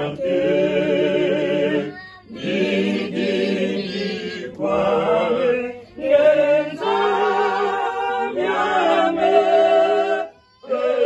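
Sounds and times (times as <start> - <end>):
group singing unaccompanied: 0.0 - 11.0.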